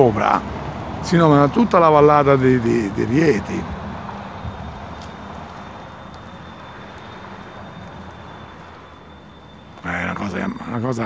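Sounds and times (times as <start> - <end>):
motor vehicle rumble: 0.0 - 11.0.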